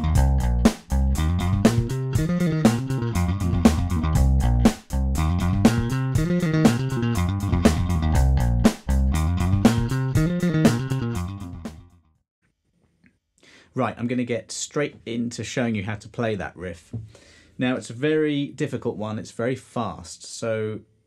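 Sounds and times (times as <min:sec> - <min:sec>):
bass guitar riff played with pick: 0:00.0 - 0:12.0.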